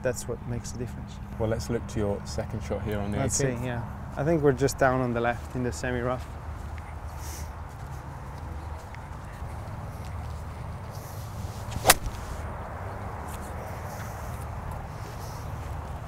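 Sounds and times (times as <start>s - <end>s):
low outdoor background noise: 0.0s - 16.0s
golf club striking ball: 11.7s - 12.4s.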